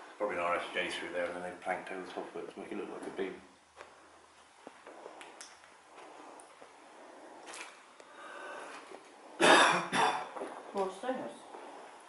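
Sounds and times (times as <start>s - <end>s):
person coughing: 9.4s - 10.4s.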